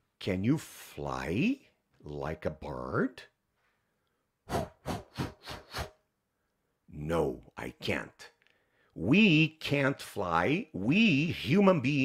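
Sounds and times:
quick rasping whooshes: 0:04.5 - 0:06.0.

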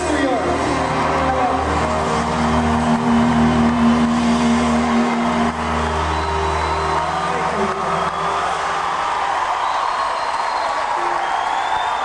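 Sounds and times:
crowd cheering: 0:00.0 - 0:12.0
rock band sustained chord: 0:00.9 - 0:07.9.

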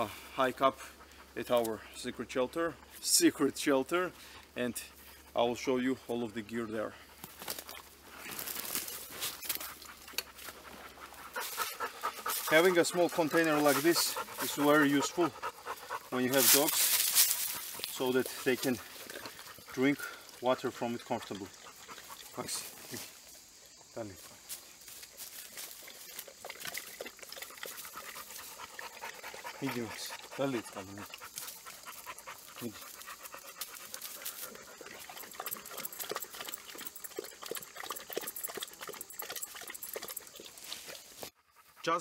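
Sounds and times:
dog panting: 0:00.0 - 0:01.8, 0:09.4 - 0:22.6, 0:25.8 - 0:42.0
gear rustling and ticking: 0:07.2 - 0:20.0, 0:25.4 - 0:41.1.

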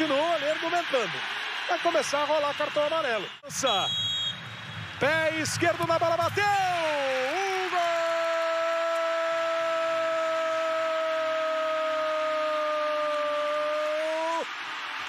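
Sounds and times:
stadium crowd cheering: 0:00.0 - 0:15.0
commentator shouting goal: 0:05.0 - 0:10.9.

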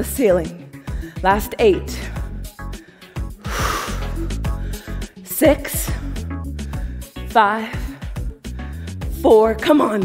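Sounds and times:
workout music: 0:00.0 - 0:10.0.

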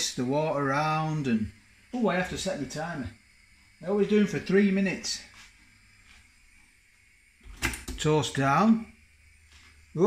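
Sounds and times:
sharp knocks and clicks at toaster: 0:07.5 - 0:08.0.

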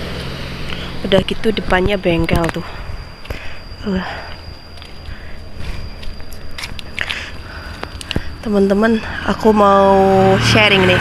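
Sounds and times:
dry leaves and twigs crackling: 0:00.0 - 0:09.4
road traffic rumble: 0:00.0 - 0:11.0
faint high-pitched tone: 0:00.8 - 0:07.7, 0:08.3 - 0:11.0.

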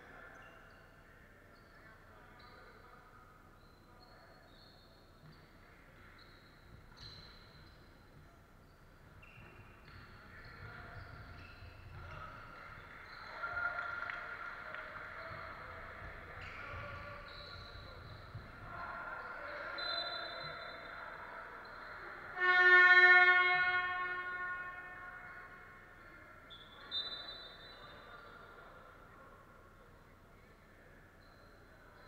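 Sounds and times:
court and crowd noise: 0:00.0 - 0:32.0
referee's whistle: 0:16.4 - 0:21.0, 0:21.6 - 0:28.3.

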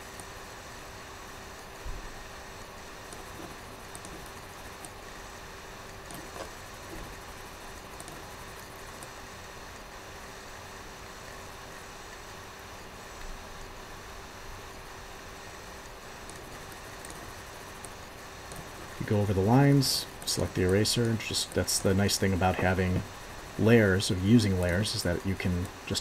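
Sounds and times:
faint steady hum: 0:00.0 - 0:26.0
steady hiss: 0:00.0 - 0:26.0.

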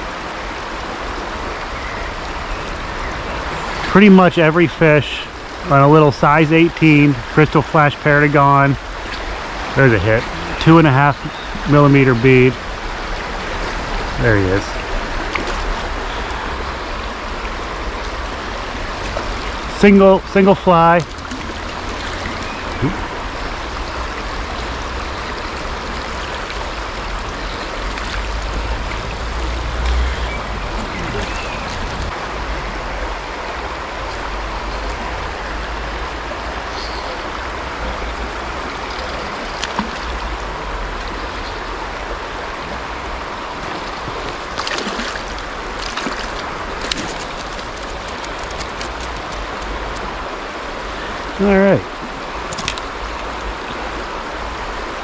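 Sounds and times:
river flowing over rocks: 0:00.0 - 0:55.0.

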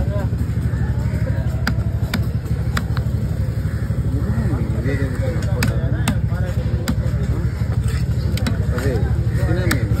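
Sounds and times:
faint voices: 0:00.0 - 0:10.0
low engine rumble: 0:00.0 - 0:10.0
knife chopping fish on wood: 0:01.5 - 0:03.2, 0:05.4 - 0:10.0.

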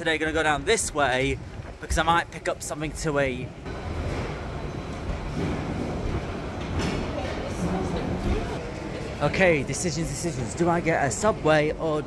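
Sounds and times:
low rumble and hiss of trains: 0:00.0 - 0:12.0
running escalator: 0:00.0 - 0:12.0.

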